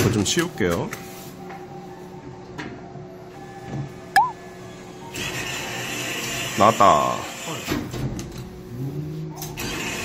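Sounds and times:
faint arcade music: 0:00.0 - 0:07.5.

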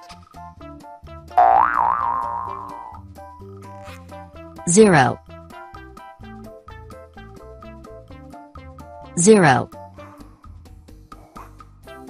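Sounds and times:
children's background music: 0:00.0 - 0:12.0
cartoon boing sound effect: 0:01.4 - 0:03.0.

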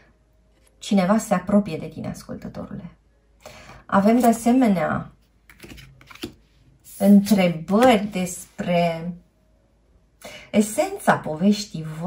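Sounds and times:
cards clicking and tapping on table: 0:05.5 - 0:06.4.

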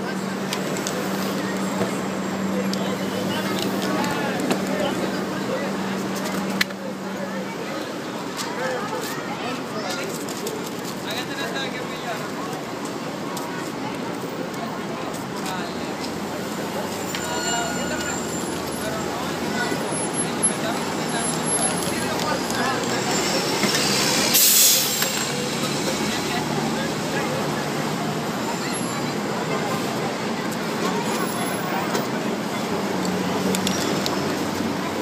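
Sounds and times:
people talking: 0:00.0 - 0:35.0
traffic noise: 0:00.0 - 0:35.0
thin high squeal: 0:17.0 - 0:18.7.

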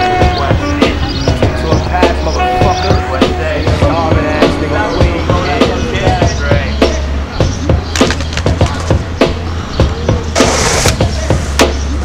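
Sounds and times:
hip-hop beat: 0:00.0 - 0:12.0
skateboard wheels rolling on stone: 0:07.9 - 0:09.1, 0:10.3 - 0:11.5
hissing scrape: 0:10.4 - 0:11.1.

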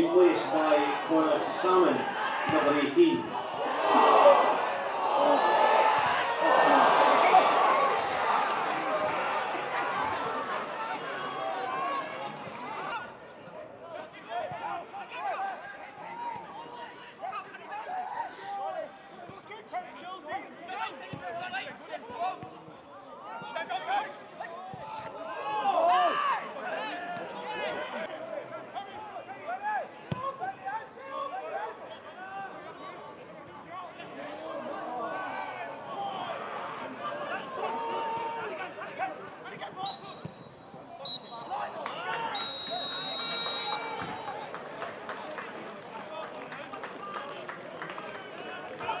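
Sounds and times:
players and crowd shouting: 0:00.0 - 0:22.4, 0:23.1 - 0:44.6
referee's whistle blowing: 0:39.8 - 0:44.4.

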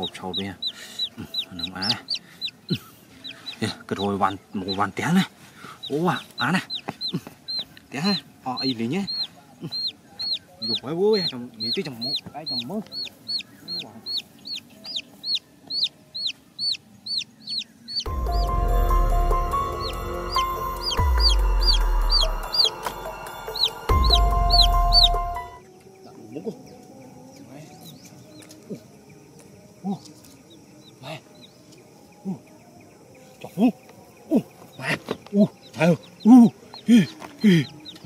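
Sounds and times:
chick peeping: 0:00.0 - 0:18.5, 0:19.5 - 0:26.8, 0:33.4 - 0:38.0
faint high chirps: 0:05.7 - 0:38.0.

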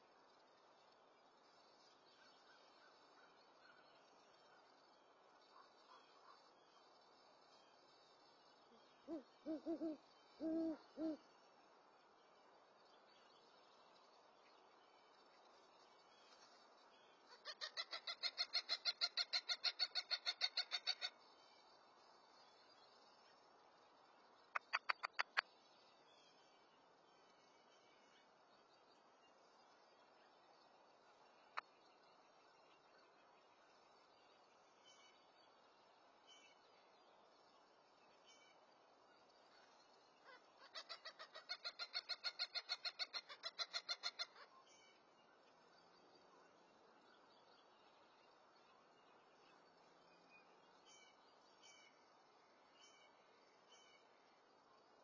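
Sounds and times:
bird rapid call: 0:24.6 - 0:25.4.

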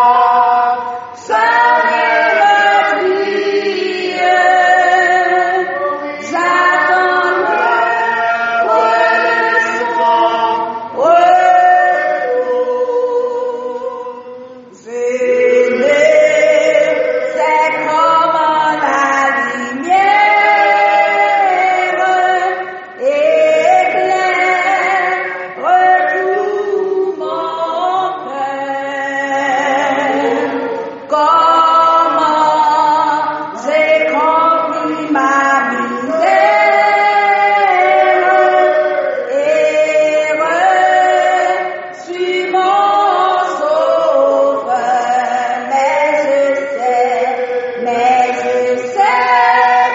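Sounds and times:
slow hymn singing: 0:00.0 - 0:49.9.

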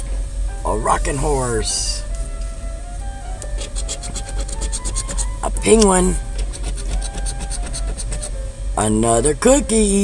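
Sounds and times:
scratching lottery ticket: 0:03.6 - 0:05.8, 0:06.4 - 0:08.3.

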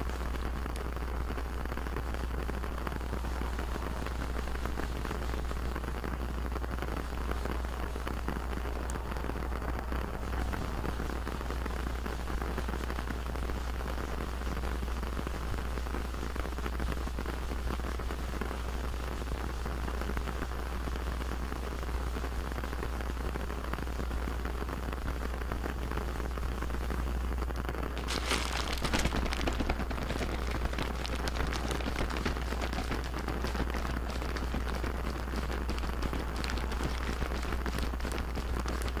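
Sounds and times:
steady hiss: 0:00.0 - 0:39.0
low hum: 0:07.2 - 0:12.3.

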